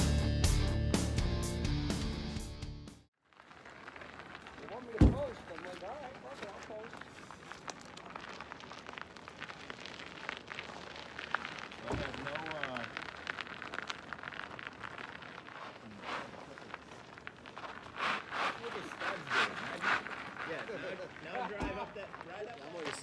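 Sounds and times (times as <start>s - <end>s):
bike tyres crunching on icy gravel: 3.1s - 23.0s.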